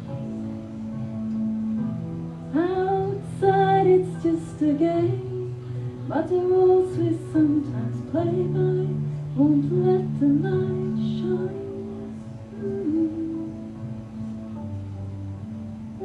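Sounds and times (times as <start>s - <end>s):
instrumental accompaniment low notes: 0.0s - 16.0s
woman singing into a microphone: 2.5s - 14.0s.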